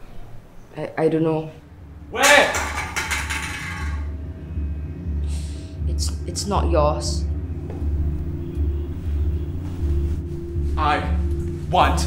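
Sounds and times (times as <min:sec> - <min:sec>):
low pulsing rumble: 0:04.0 - 0:09.5.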